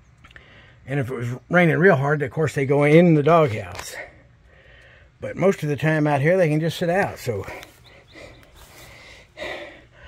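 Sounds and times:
soft breathing: 4.0s - 5.2s, 7.4s - 10.0s.

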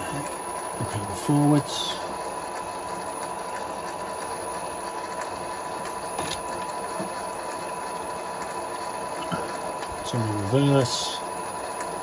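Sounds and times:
lathe running with whine: 0.0s - 12.0s.

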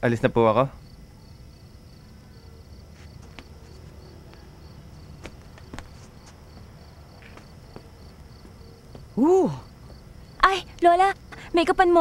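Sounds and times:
crickets chirping: 0.0s - 12.0s
low background hum: 0.0s - 12.0s.

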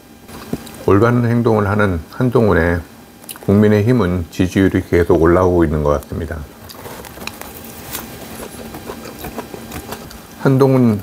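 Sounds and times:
person chewing food: 6.6s - 10.3s.

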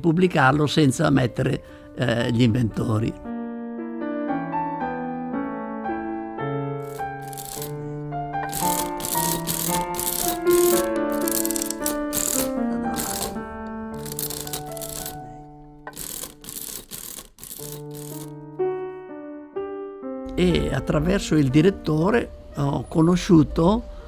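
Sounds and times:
soft piano music: 0.0s - 16.2s, 17.6s - 24.0s
adding machine clattering: 6.8s - 7.8s, 8.4s - 15.3s, 15.9s - 18.3s.

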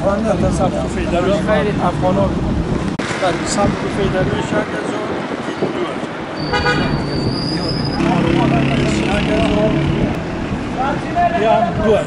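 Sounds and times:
people talking: 0.0s - 2.3s, 3.1s - 6.2s, 7.4s - 10.1s, 10.8s - 12.0s
vehicle engine passing: 8.0s - 11.3s.

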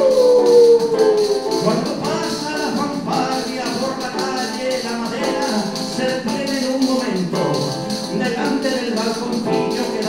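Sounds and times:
hand percussion rattle: 0.0s - 10.0s.

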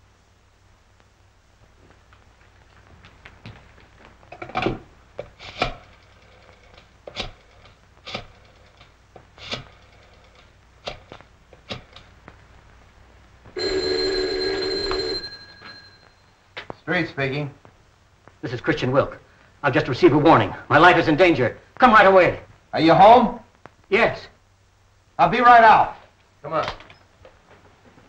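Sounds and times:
telephone ringing: 13.6s - 16.4s.

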